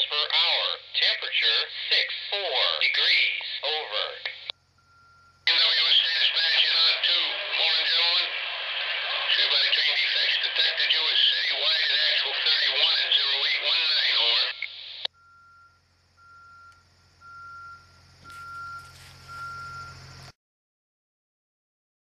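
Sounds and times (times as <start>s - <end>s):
garbled radio voice transmission: 0.0s - 4.5s, 5.5s - 15.1s
faint high beeps: 4.5s - 6.7s, 15.1s - 20.3s
low hum: 4.5s - 9.7s.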